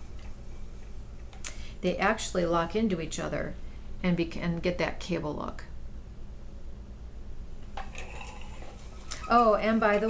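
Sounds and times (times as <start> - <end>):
spinning wheel rumbling: 7.8 - 10.0.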